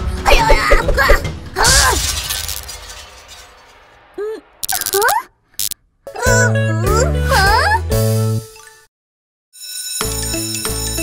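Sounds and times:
cartoon shattering crash: 0.5s - 5.2s.

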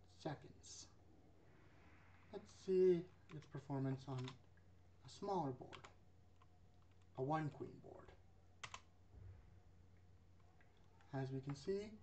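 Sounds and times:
steady low hum: 0.0s - 12.0s
computer keyboard keystrokes: 4.1s - 4.4s, 5.7s - 7.2s, 8.6s - 8.9s.

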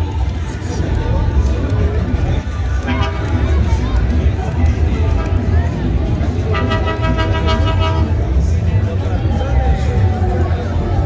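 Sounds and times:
constant low rumble: 0.0s - 11.0s
street voices: 0.0s - 11.0s
horn steady note: 2.8s - 3.6s, 6.3s - 8.4s.

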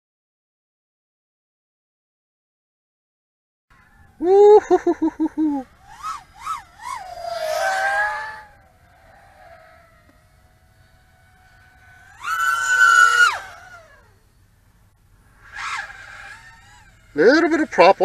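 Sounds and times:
quadcopter motors whining: 3.7s - 18.0s.

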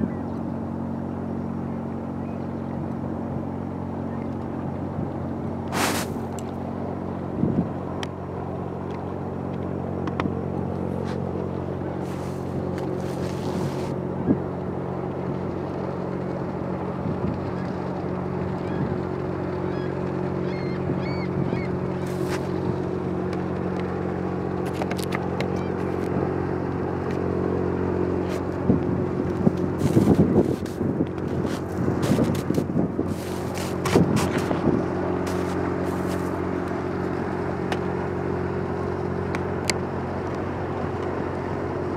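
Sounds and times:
ship engines droning: 0.0s - 41.9s.

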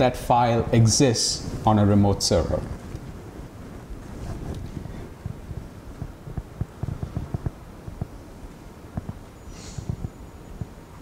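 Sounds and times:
microphone rumble: 0.0s - 10.8s
soft low thumps: 2.6s - 10.8s.

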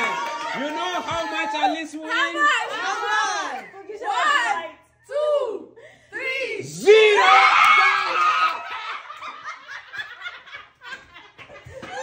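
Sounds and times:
group of people laughing: 7.8s - 12.0s.

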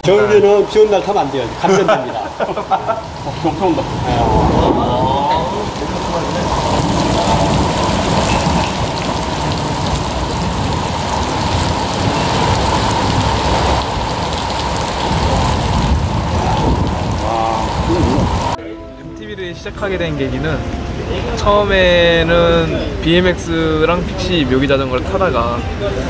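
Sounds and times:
heavy rain pouring: 0.0s - 18.6s, 19.2s - 26.0s.

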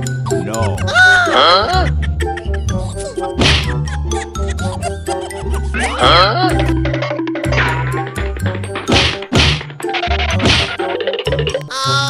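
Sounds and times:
cartoon whack sound effects: 3.4s - 3.8s, 10.3s - 10.9s.

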